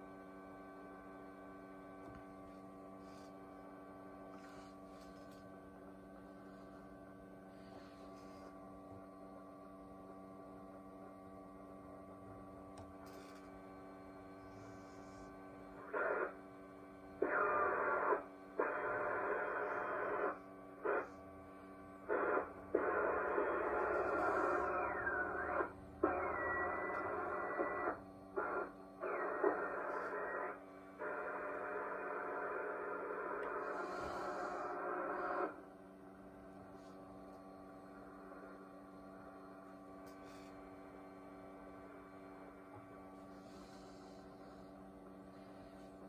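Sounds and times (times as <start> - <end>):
steady hum: 0.0 - 46.0
radio static: 14.4 - 21.3, 21.9 - 35.7
crackly radio broadcast: 14.6 - 46.0
radio whistle: 15.8 - 16.4, 17.2 - 21.2, 22.0 - 35.6.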